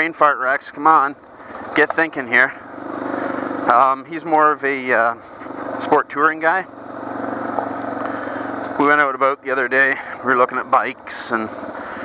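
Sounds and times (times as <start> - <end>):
man talking: 0.0 - 2.7, 3.6 - 5.2, 5.8 - 6.7, 8.7 - 11.6
motorcycle engine running: 0.0 - 12.0.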